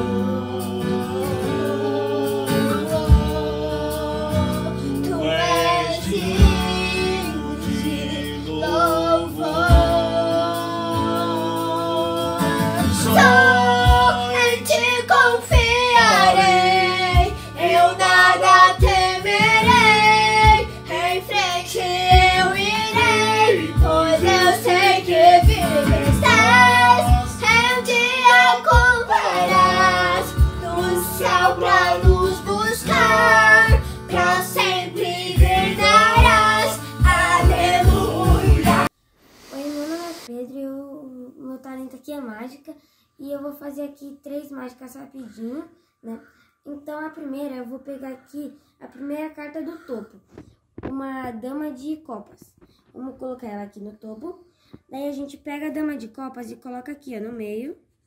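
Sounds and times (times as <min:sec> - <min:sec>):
man singing: 0:00.0 - 0:19.8, 0:20.4 - 0:38.9
girl singing: 0:00.0 - 0:38.9, 0:39.5 - 0:49.1
guitar accompaniment: 0:00.0 - 0:38.9.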